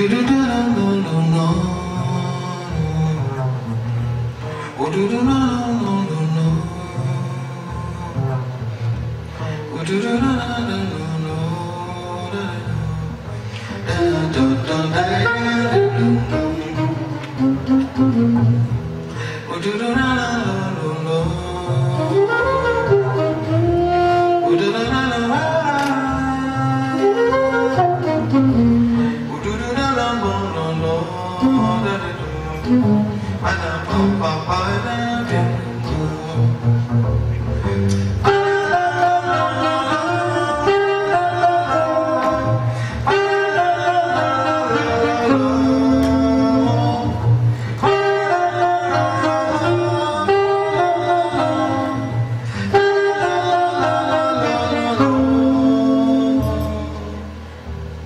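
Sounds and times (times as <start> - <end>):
double bass line: 0.0 - 58.0
saxophone melody: 10.6 - 19.2, 20.5 - 58.0.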